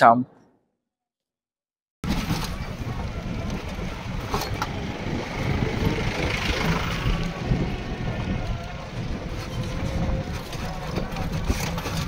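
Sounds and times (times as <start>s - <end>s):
truck driving past: 2.0s - 12.0s
wind rumble on microphone: 2.0s - 12.0s.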